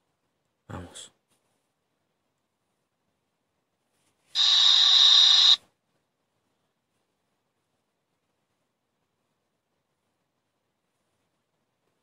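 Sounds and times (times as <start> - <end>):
static-like hiss: 0.0 - 12.0.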